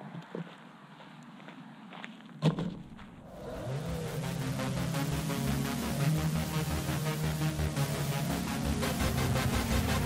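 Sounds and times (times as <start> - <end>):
background music: 3.2 - 10.0
rising tone: 3.2 - 10.0.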